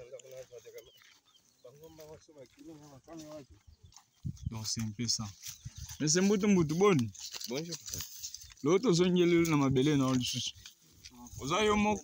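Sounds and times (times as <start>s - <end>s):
man talking: 0.0s - 1.0s, 1.6s - 3.6s, 4.4s - 8.0s, 8.6s - 12.0s.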